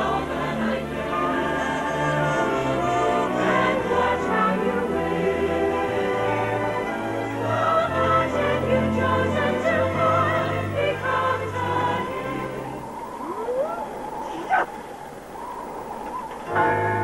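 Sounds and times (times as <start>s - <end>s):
choir singing: 0.0s - 14.4s
rising pitch glides: 9.6s - 17.0s.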